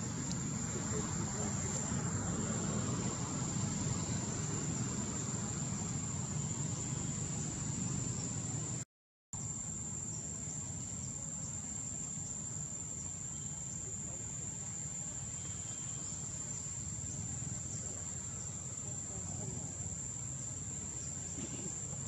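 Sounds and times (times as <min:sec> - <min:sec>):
high-pitched insect drone: 0:09.4 - 0:22.0.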